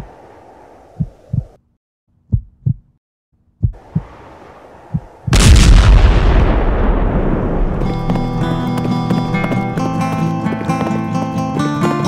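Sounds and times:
deep thuds: 2.3 - 3.0, 3.6 - 4.1, 4.9 - 10.1
loud explosion blast: 5.3 - 8.4.

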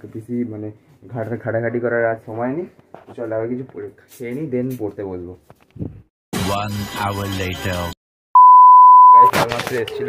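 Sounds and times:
man's voice: 6.4 - 8.0
high censor bleep: 8.4 - 9.3.

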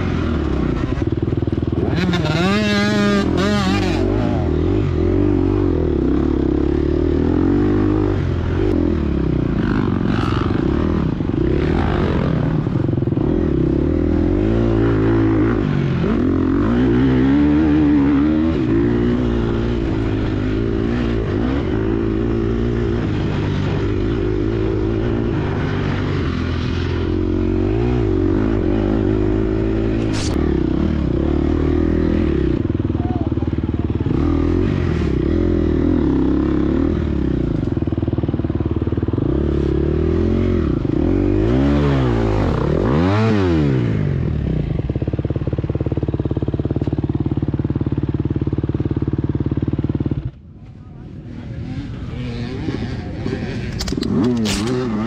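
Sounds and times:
dirt bike engine revving: 0.0 - 50.4, 51.0 - 55.0.

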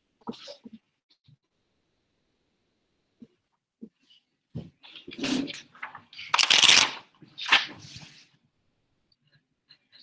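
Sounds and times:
paper pages rustling: 4.9 - 8.2.

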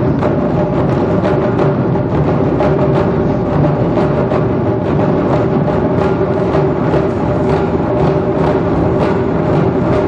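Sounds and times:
taiko drum ensemble drumming: 0.0 - 10.0.

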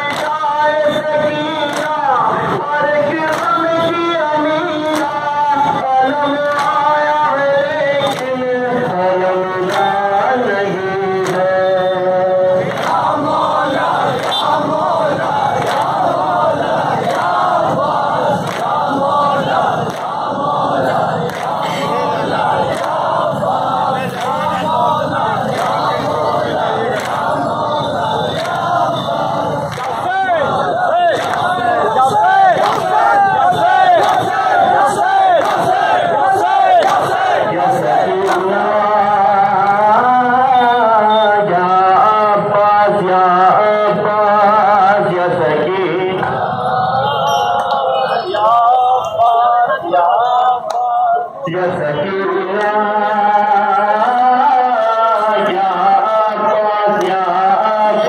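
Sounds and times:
crowd chanting a lament: 0.0 - 58.0.

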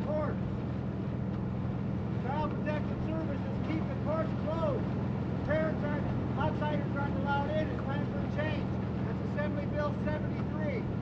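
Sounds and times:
man speaking: 0.0 - 0.4, 2.2 - 4.9, 5.5 - 10.9
steady low hum: 0.0 - 11.0.

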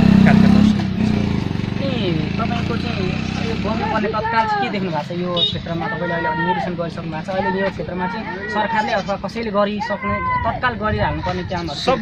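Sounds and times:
man talking: 0.0 - 1.4
crowd: 3.1 - 12.0.

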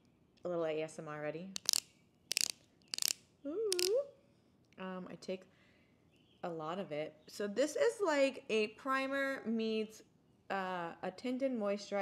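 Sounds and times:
ratcheting clicks: 1.6 - 3.9.

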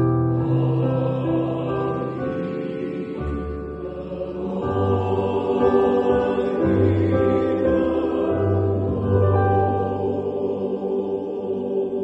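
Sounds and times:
male choir singing in harmony: 0.1 - 12.0.

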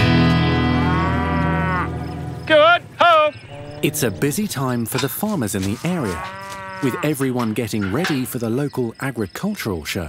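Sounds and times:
guitar chord: 0.0 - 2.5
cows mooing: 0.4 - 8.4.

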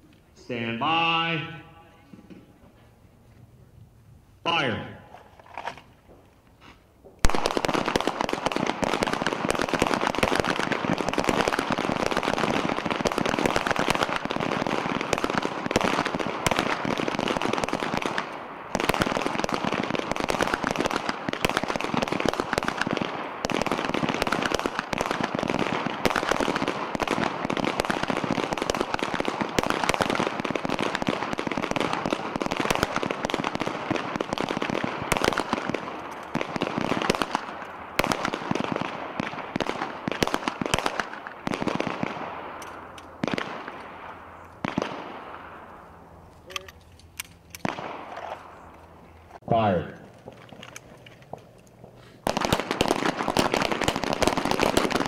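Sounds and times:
pistol gunshots: 7.2 - 45.6, 47.6 - 48.6, 52.2 - 55.0.

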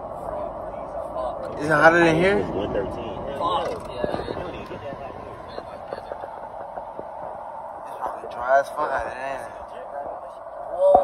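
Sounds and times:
car road noise from inside: 0.3 - 9.8.

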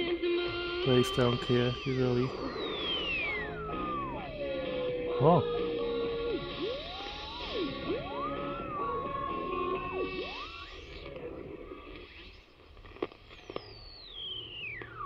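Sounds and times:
jumbled radio station audio: 0.0 - 15.0
radio tuning whistles: 0.0 - 15.0
radio static: 0.5 - 13.7.

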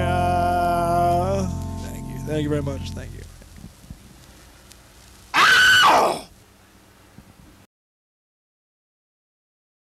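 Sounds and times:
person screaming: 5.3 - 6.3.

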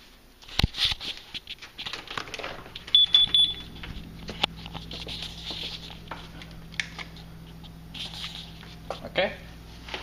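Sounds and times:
handling noises: 0.5 - 9.1
low steady hum: 1.2 - 10.0.

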